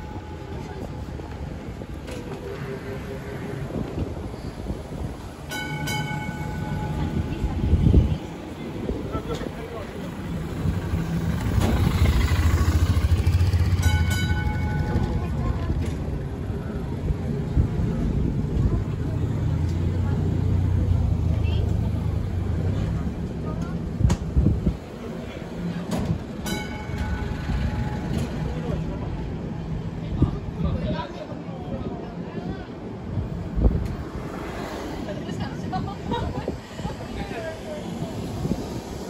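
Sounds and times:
tram motors and wheels rumbling: 0.0s - 39.0s.

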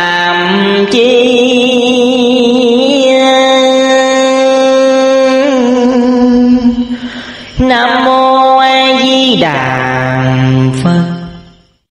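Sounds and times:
person chanting in held notes: 0.0s - 11.6s.

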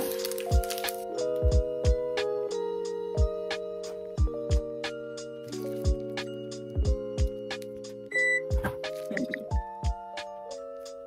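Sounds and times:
background music with steady beat: 0.0s - 11.0s
short high beep: 8.1s - 8.5s.

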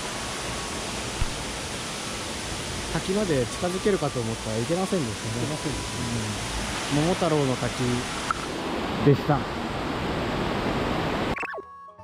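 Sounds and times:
river water rushing: 0.0s - 11.4s.

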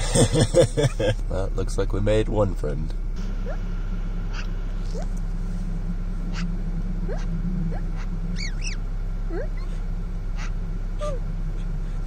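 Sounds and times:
car idling hum: 0.0s - 12.0s
magpie calls: 7.1s - 8.8s.

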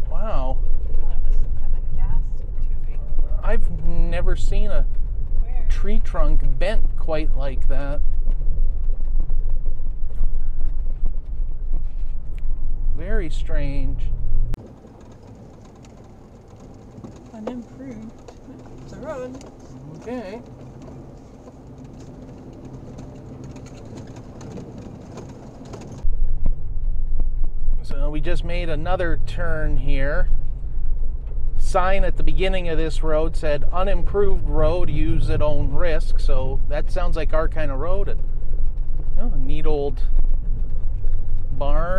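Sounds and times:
truck engine and tyres rumbling: 0.0s - 41.9s
small clicks and rattles: 14.6s - 26.1s.

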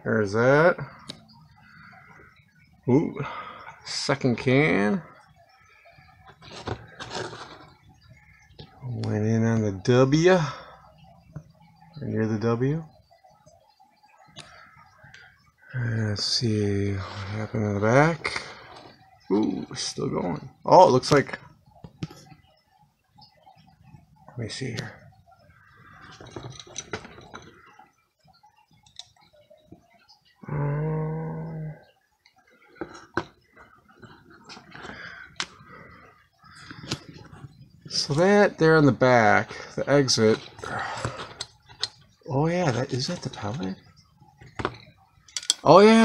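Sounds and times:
rustling: 6.4s - 7.8s.

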